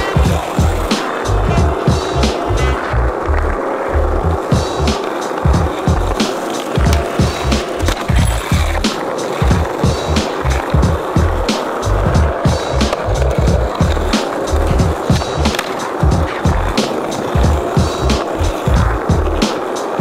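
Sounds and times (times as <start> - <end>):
music with a steady beat: 0.0 - 2.9, 4.3 - 20.0
skateboard clacking: 0.0 - 20.0
skateboard wheels rolling on asphalt: 0.0 - 20.0.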